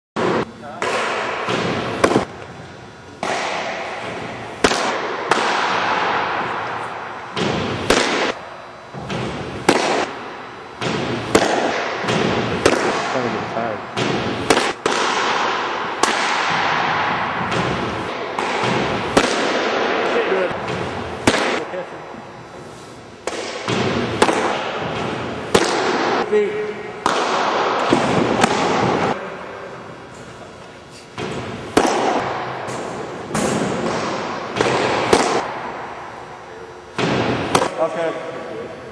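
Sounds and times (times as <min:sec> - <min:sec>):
echoing gym noise: 0:00.2 - 0:38.9
baseball smacking into mitt: 0:00.8 - 0:02.3, 0:31.2 - 0:35.8.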